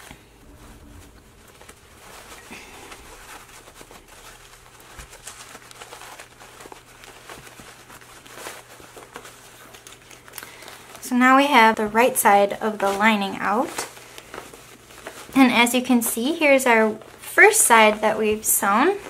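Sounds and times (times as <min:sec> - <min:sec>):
fabric bag rustling and crinkling: 0:00.0 - 0:19.0.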